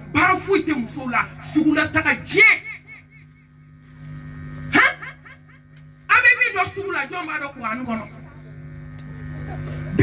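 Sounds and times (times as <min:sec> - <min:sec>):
woman preaching into microphone: 0:00.0 - 0:03.2, 0:04.7 - 0:08.3
steady low hum: 0:00.0 - 0:10.0.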